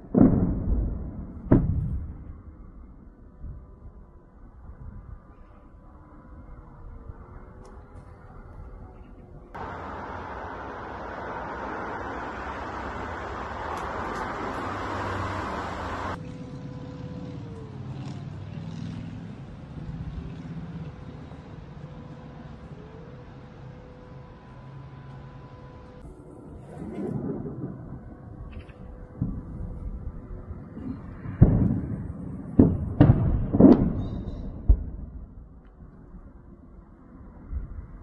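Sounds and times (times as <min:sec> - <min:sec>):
explosion booms with rumble: 0:00.0 - 0:02.7, 0:29.2 - 0:35.5
faint falling whine: 0:00.1 - 0:17.8, 0:20.8 - 0:32.5
low engine-like hum: 0:01.9 - 0:33.0
loud even rush: 0:09.6 - 0:16.2.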